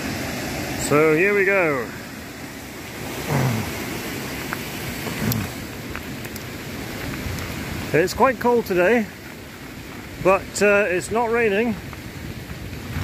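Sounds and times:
rushing river water: 0.0s - 13.0s
bike tyres on gravel: 0.1s - 13.0s.

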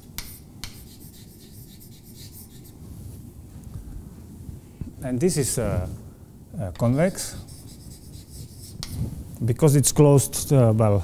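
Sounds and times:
chalk taps: 0.2s - 2.7s, 6.7s - 9.0s
chalk scratching on blackboard: 0.2s - 2.8s, 6.8s - 9.1s.

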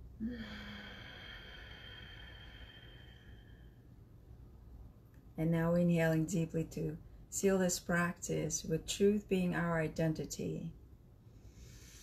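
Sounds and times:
woman breathing deeply: 0.0s - 4.2s, 11.2s - 12.0s.

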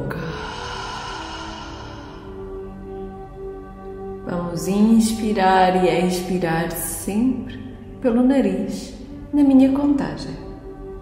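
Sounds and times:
soft ambient music: 0.0s - 11.0s
breathy exhale through mouth: 0.1s - 3.3s.

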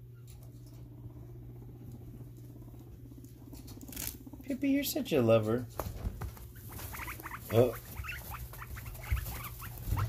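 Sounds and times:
guinea pig rumbling: 0.0s - 10.0s.

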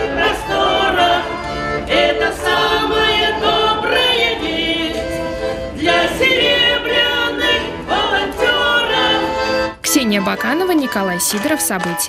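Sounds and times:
women singing together: 0.0s - 9.6s
button accordions: 0.0s - 12.0s.

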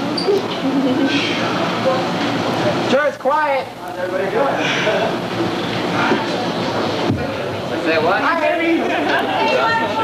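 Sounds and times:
chatter of overlapping voices: 0.0s - 10.0s.

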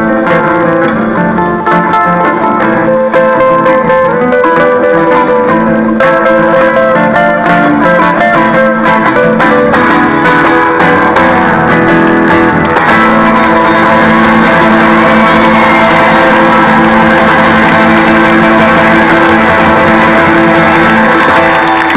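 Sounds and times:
acoustic guitars strumming chords: 0.0s - 21.9s.

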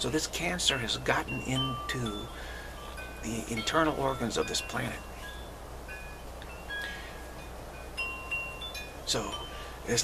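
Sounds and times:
low steady hum: 0.0s - 10.0s
wind chimes ringing: 0.0s - 10.0s.

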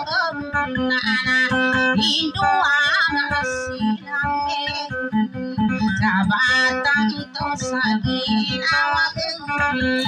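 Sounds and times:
plucked guitar: 0.0s - 10.0s
woman singing: 0.0s - 10.0s.

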